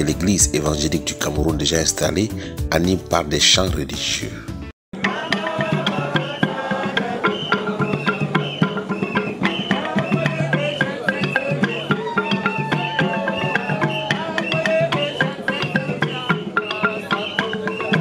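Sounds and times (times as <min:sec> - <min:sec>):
hand drum beats: 0:05.0 - 0:18.0
wooden xylophone played fast: 0:05.0 - 0:18.0.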